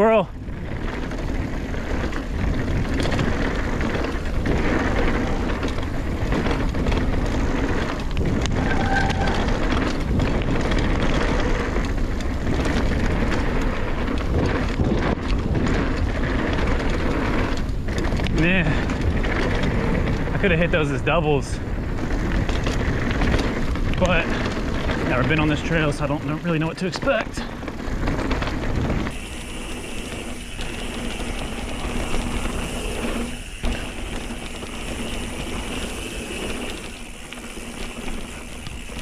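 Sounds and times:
bike tyres on dirt trail: 0.0 - 39.0
wind rushing on microphone: 0.0 - 39.0.

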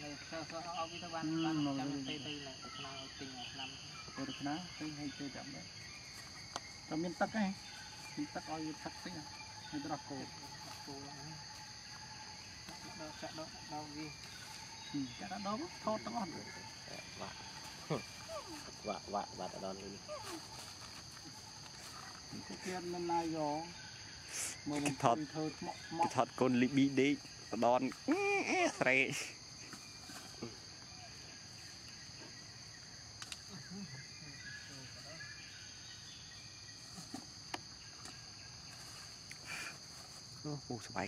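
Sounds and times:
insects droning: 0.0 - 41.0.

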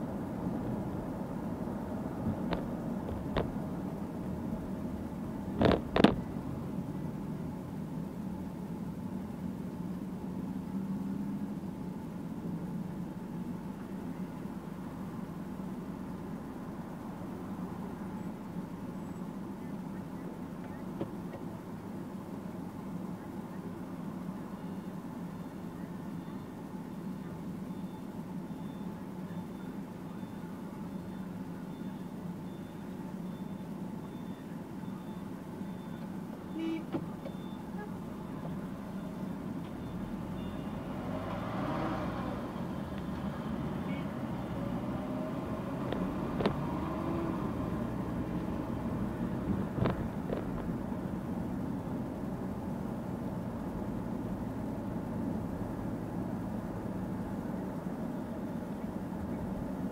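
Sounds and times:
car engine and cabin hum: 0.0 - 59.9.

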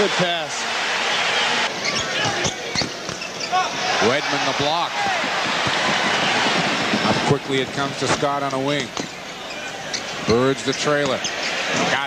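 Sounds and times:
crowd noise: 0.0 - 12.0
sneakers squeaking on hardwood: 1.7 - 4.4, 8.9 - 11.8.

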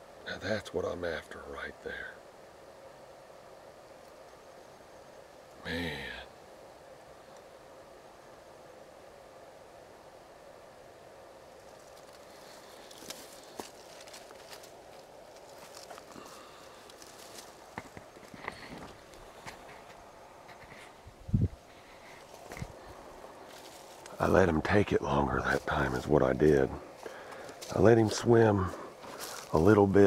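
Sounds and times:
movement in dry leaves: 11.5 - 30.0
camera rubbing against clothing: 17.2 - 22.8.

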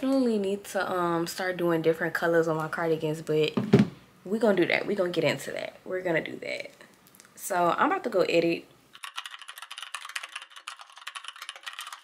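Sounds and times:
rapid keyboard typing clicks: 9.0 - 12.0.

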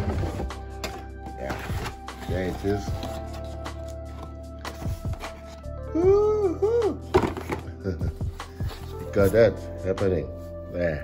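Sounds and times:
background music with steady tones: 0.0 - 11.0.

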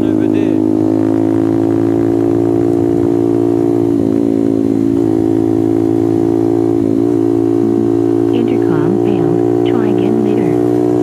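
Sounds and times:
motorcycle engine running: 0.0 - 11.0.

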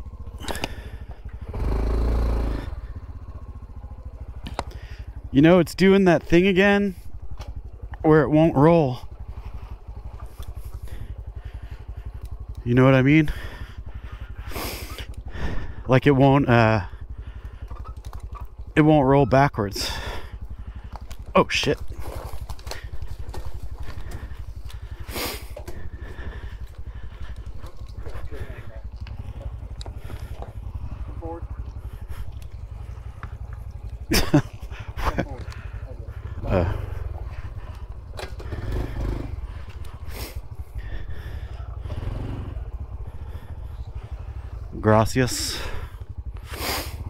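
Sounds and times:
motorcycle engine idling: 0.0 - 47.0.

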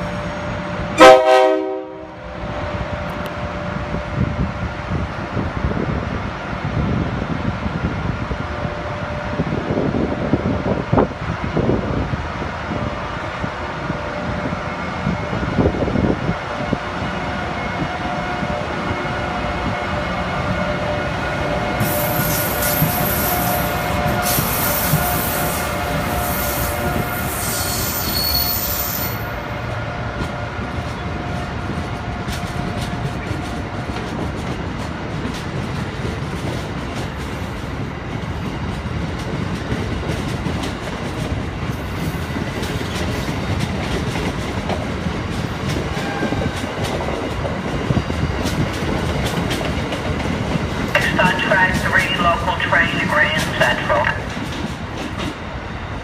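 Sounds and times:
electric locomotive whine: 0.0 - 56.0
train coaches rumbling: 0.0 - 56.0
high squeal: 26.2 - 29.4.

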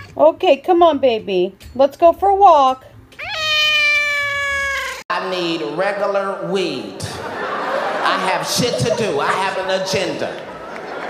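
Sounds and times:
cat meowing: 3.2 - 5.0.

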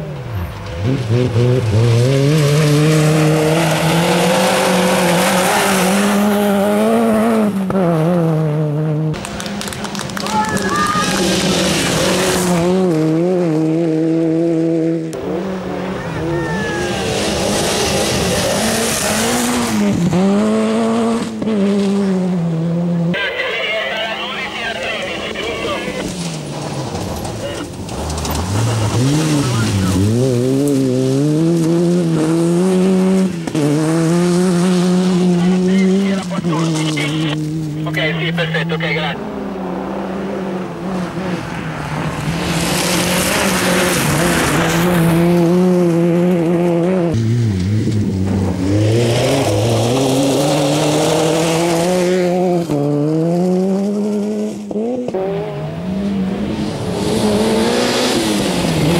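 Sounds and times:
rally car engine revving: 0.0 - 58.9
tyres on gravel: 23.2 - 30.6.

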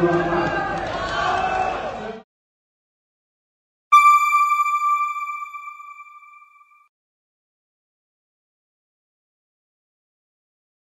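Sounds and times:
chime ringing: 4.0 - 6.8.

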